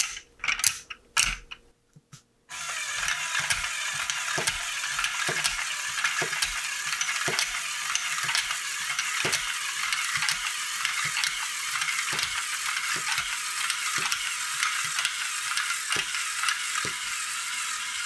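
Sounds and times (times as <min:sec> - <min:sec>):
motor and gears whirring: 0:02.5 - 0:18.0.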